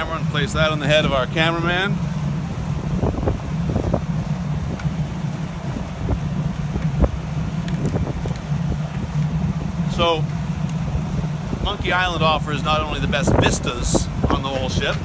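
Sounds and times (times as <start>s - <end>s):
low engine drone: 0.0s - 15.0s.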